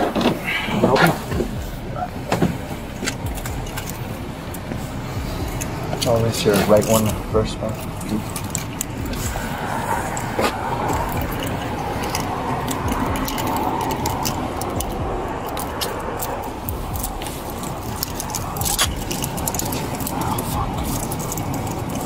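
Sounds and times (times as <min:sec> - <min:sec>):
background rumble: 0:00.0 - 0:22.0
handcuffs clicking and jangling: 0:02.9 - 0:22.0.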